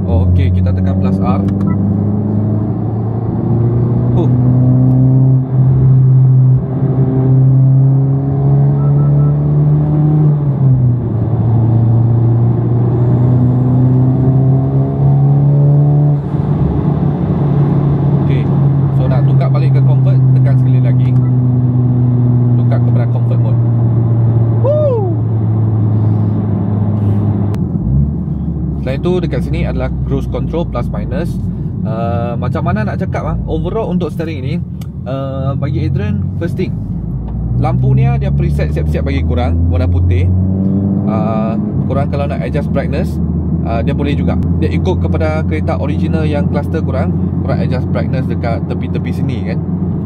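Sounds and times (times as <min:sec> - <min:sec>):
car engine accelerating hard: 0:00.0 - 0:50.0.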